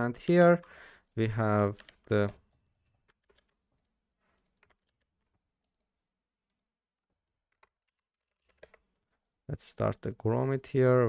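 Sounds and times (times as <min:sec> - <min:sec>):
computer mouse and keyboard clicks: 0:00.7 - 0:05.9, 0:07.5 - 0:09.1.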